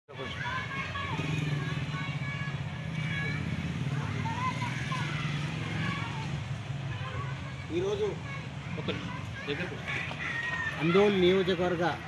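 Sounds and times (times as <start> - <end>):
people's voices: 0.1 - 12.0.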